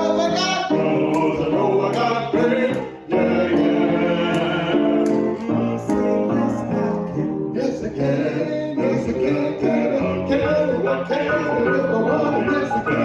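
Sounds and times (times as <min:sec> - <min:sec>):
instrumental accompaniment: 0:00.0 - 0:13.0
two men singing gospel: 0:00.0 - 0:13.0.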